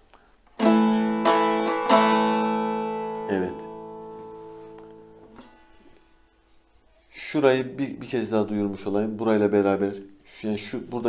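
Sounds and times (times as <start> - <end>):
long-neck lute strummed chords: 0.6 - 6.2.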